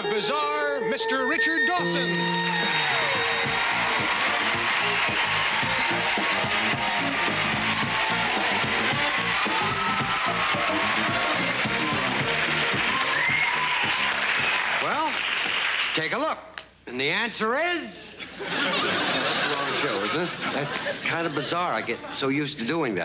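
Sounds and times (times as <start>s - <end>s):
band playing walk-on music: 0.0s - 15.0s
audience applauding and cheering: 1.8s - 16.1s.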